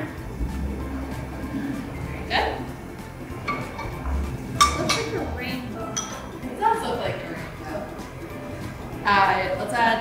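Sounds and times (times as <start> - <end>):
background music: 0.0 - 10.0
utensil clinking against a pan: 4.6 - 5.3, 5.9 - 6.4.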